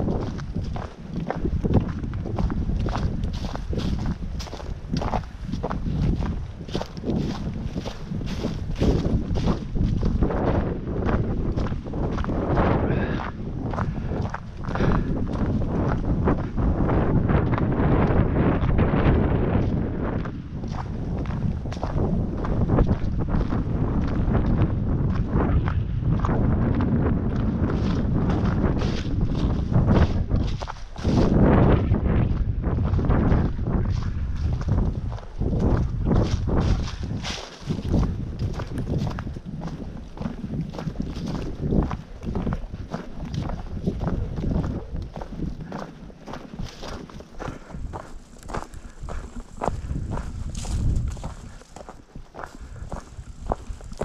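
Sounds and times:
footsteps on dry leaves: 0.0s - 10.4s, 28.6s - 31.4s, 34.0s - 54.0s
wind buffeting microphone: 0.0s - 54.0s.

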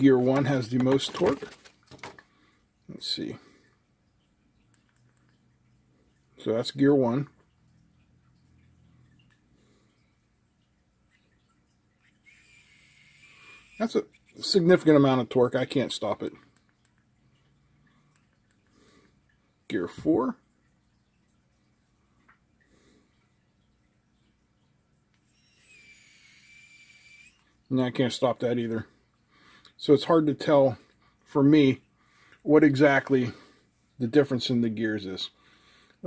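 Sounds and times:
small electric motor whine: 12.1s - 14.2s, 25.3s - 27.4s.

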